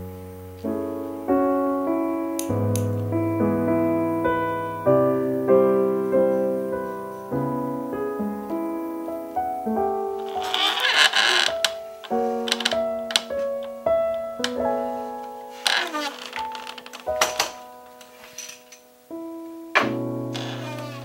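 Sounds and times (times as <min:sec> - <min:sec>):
gentle piano music: 0:00.0 - 0:21.0.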